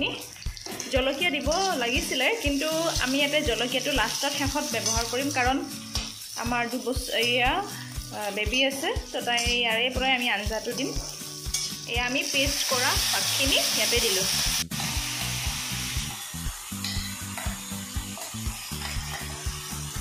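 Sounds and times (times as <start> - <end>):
vegetables sizzling in oil: 0.0 - 20.0
metal spatula scraping pan: 16.8 - 19.4.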